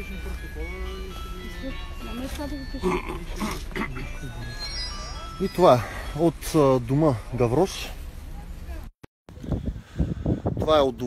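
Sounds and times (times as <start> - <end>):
music playing: 0.0 - 6.7
indistinct voices talking: 0.0 - 8.9.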